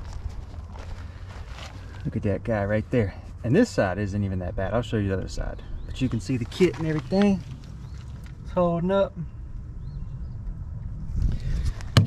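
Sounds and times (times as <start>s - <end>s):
rustling handling noise: 0.0s - 2.2s, 6.1s - 8.5s
shuffling on gravel: 0.0s - 3.3s, 5.4s - 8.5s
low rumble: 0.0s - 12.0s.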